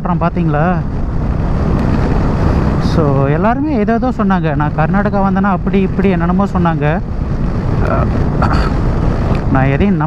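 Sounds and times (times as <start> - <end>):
motorcycle road noise: 0.0 - 10.0
wind rush: 0.0 - 10.0.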